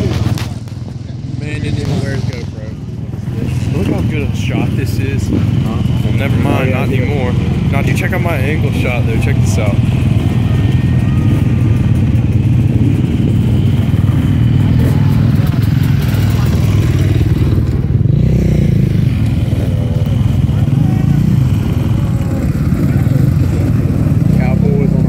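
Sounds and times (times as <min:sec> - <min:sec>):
dirt bike engines rumbling: 0:00.0 - 0:25.0.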